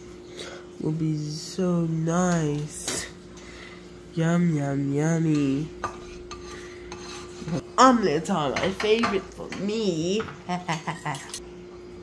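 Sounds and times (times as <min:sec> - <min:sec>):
spatula scraping frying pan: 0:05.3 - 0:07.7.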